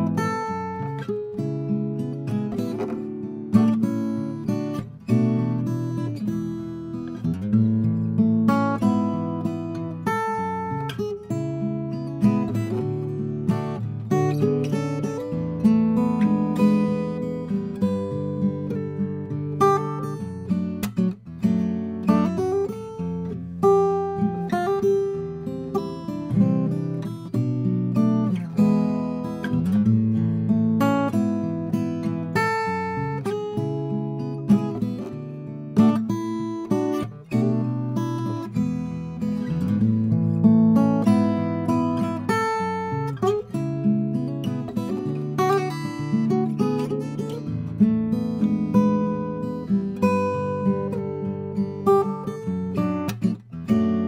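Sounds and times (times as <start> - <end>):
fingerpicked acoustic guitar: 0.0 - 54.0.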